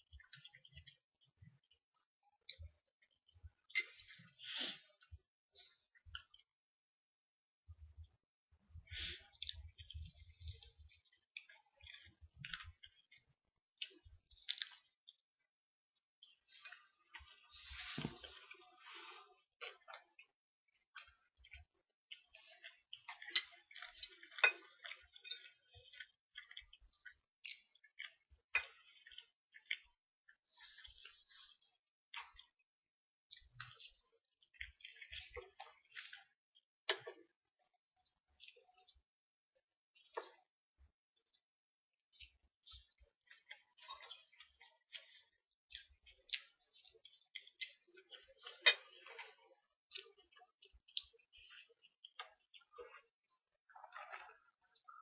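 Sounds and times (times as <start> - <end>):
chewing food: 0.0 - 6.6, 7.6 - 55.0.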